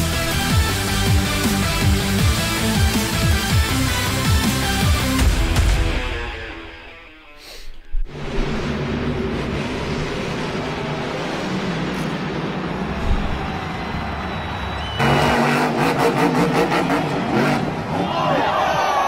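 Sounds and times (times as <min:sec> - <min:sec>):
intro music: 0:00.0 - 0:07.4
monster truck engine running: 0:08.1 - 0:18.1.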